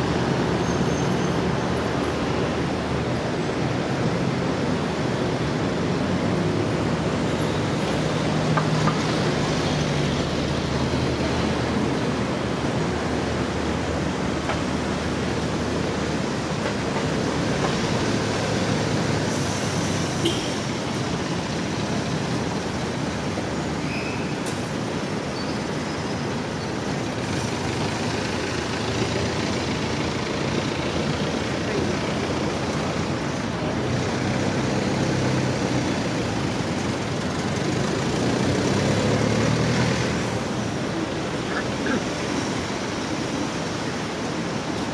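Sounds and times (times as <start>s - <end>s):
busy city traffic: 0.0s - 44.9s
engine passing close by: 37.5s - 40.5s.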